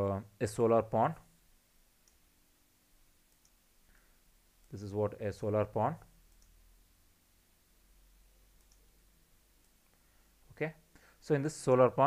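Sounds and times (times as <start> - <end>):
faint click: 3.3 - 3.6, 8.6 - 8.8.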